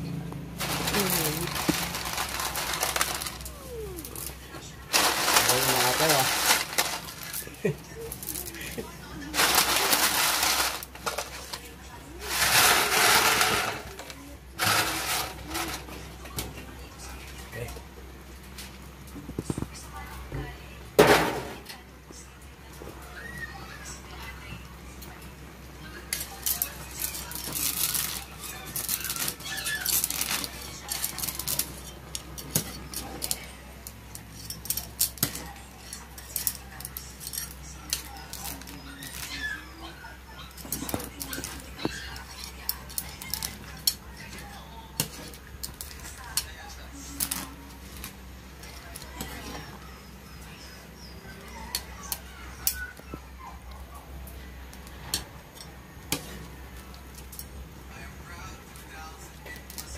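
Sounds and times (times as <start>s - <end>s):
metal utensils scraping a wok: 4.2s - 7.5s, 9.4s - 15.9s.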